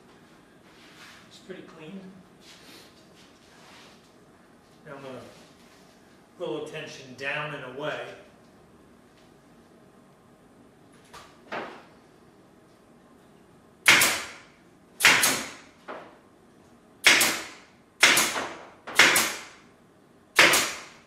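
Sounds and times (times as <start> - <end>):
staple gun shots: 13.9 - 14.4, 15.0 - 15.7, 17.0 - 19.6, 20.4 - 21.0.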